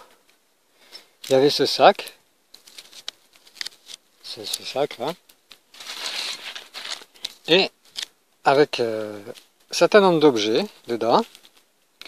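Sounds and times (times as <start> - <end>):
cloth bag rustling: 5.6 - 8.0.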